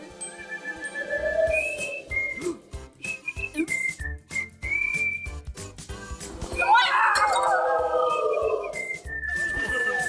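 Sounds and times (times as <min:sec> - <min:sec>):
cartoon character whistling: 0:01.0 - 0:04.0.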